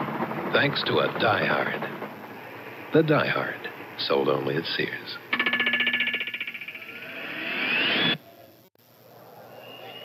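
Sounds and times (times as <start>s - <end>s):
rising whine: 5.3s - 8.2s.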